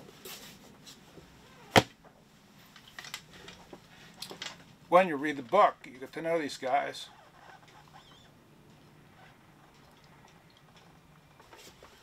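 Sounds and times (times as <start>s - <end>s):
faint rustles of book handling: 0.0s - 1.4s, 11.3s - 12.0s
book landing with a thud: 1.7s - 2.0s.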